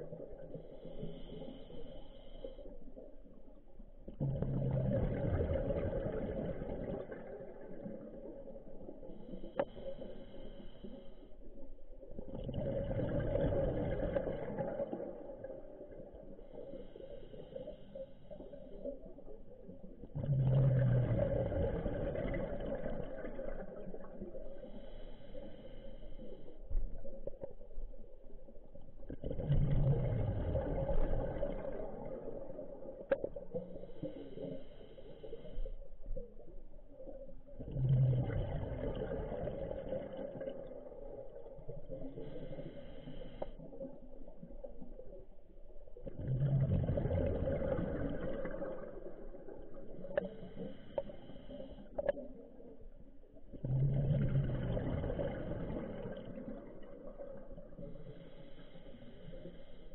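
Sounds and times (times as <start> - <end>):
exhaled bubbles through regulator: 0.0 - 59.9.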